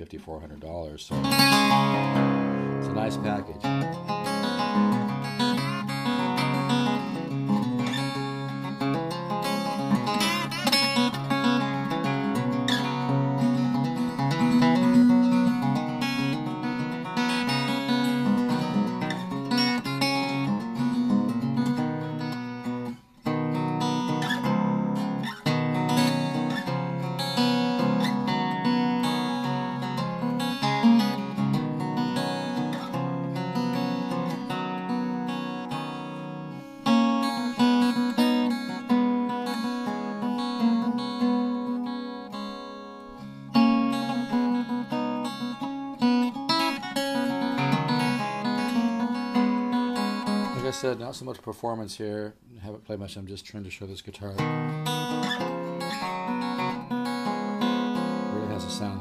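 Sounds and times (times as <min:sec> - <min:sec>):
unplugged guitar chords strummed: 0:01.1 - 0:51.0, 0:54.4 - 0:59.0.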